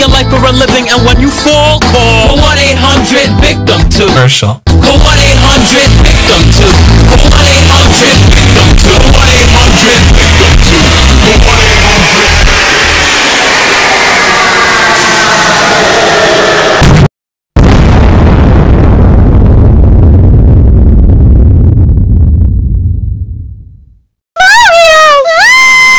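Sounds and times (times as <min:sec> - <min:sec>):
distorted explosion boom: 0:06.0 - 0:24.0
high cartoon crying wail: 0:24.4 - 0:25.9.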